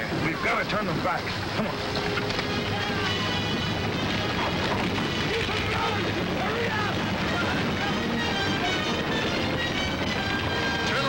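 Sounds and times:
grass fire rushing: 0.0s - 11.0s
dramatic orchestral music: 1.4s - 11.0s.

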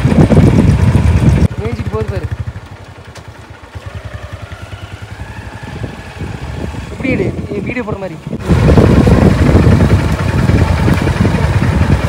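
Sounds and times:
motorcycle engine idling: 0.0s - 12.0s.

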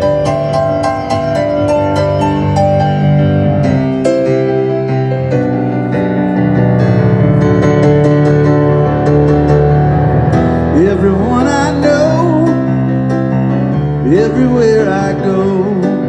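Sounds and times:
keyboard playing sustained chords: 0.0s - 16.0s
man singing: 10.7s - 12.8s, 14.0s - 16.0s.

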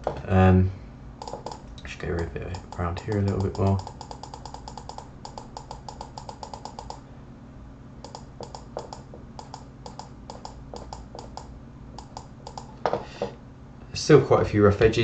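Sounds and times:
steady low hum: 0.0s - 15.0s
computer mouse clicking: 1.2s - 7.0s, 8.0s - 12.7s.

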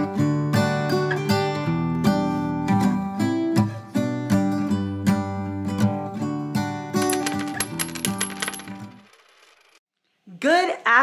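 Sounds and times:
guitar music: 0.0s - 7.0s
woman talking: 10.3s - 11.0s.

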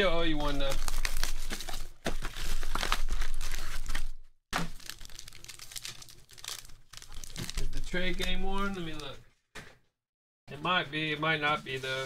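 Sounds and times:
shrink-wrap tearing and crinkling: 0.0s - 9.0s
foil pack crinkling: 0.0s - 9.1s.

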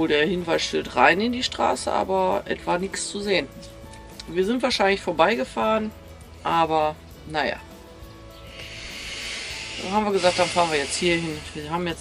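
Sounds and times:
hissing noise: 8.4s - 12.0s.

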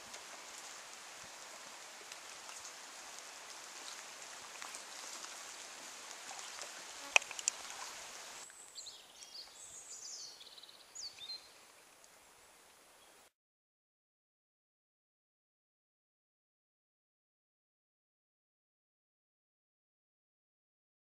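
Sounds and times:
light rain pattering on leaves: 0.0s - 13.2s.

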